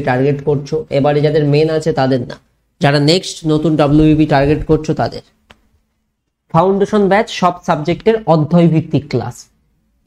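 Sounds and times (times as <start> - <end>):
man speaking: 0.0 - 5.4, 6.5 - 9.6.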